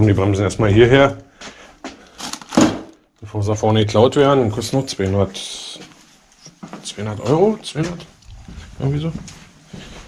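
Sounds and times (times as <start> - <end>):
plastic bag crinkling: 2.0 - 3.1.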